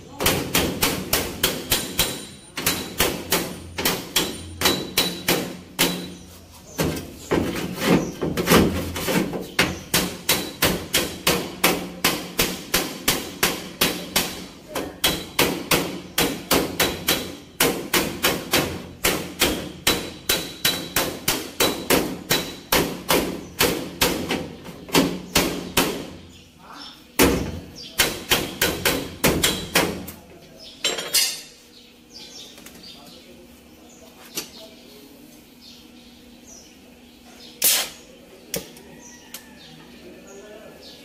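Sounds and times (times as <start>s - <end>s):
hammer on sheet metal: 0.1s - 6.2s, 8.4s - 26.2s, 27.2s - 30.1s.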